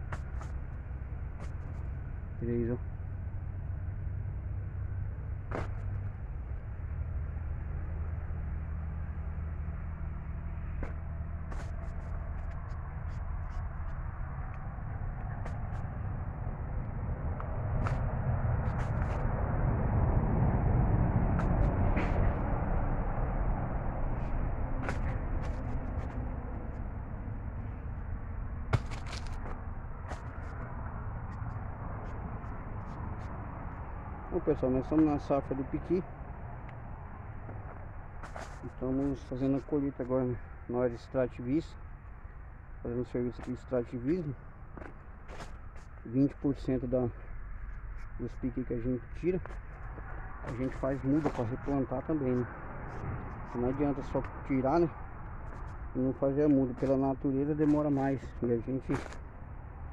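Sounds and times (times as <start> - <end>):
steady low rumble: 0.0 - 59.9.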